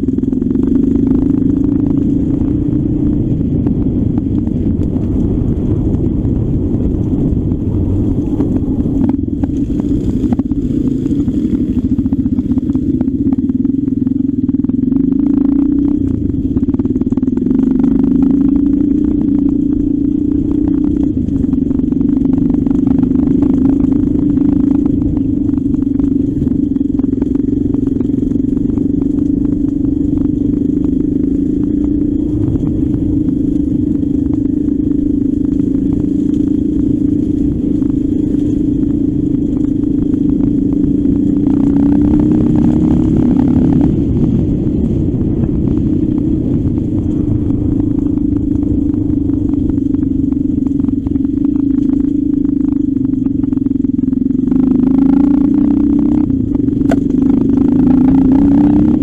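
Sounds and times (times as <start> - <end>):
motorcycle engine running: 0.0 - 59.0.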